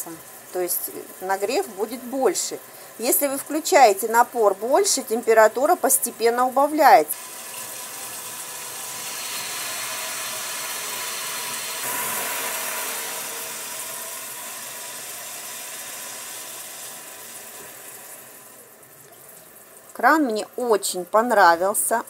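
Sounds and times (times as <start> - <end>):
water running into steel sink: 0.0 - 21.0.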